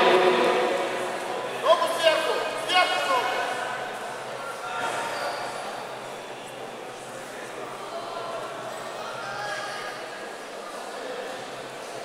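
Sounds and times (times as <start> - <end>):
indistinct voices: 0.0 - 2.4
indoor hall background noise: 0.0 - 12.0.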